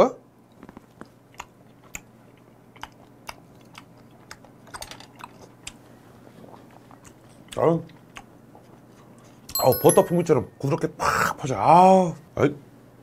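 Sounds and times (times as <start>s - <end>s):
mouth chewing wet smacks: 0.6s - 8.9s.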